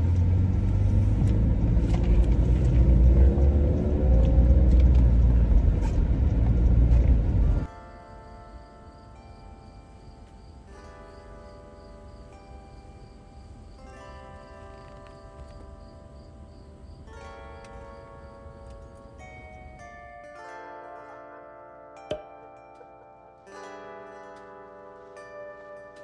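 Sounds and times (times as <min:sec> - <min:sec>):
road rumble inside moving car: 0:00.0 - 0:07.7
plucked chime-like background music: 0:07.6 - 0:26.0.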